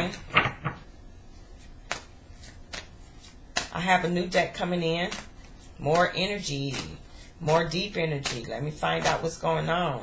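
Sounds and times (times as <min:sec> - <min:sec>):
cards being shuffled: 0:01.5 - 0:03.8.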